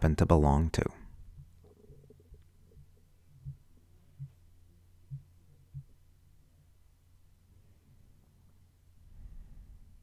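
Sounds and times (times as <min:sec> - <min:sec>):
faint low hum: 0:00.0 - 0:10.0
soft low thumps: 0:00.9 - 0:06.8.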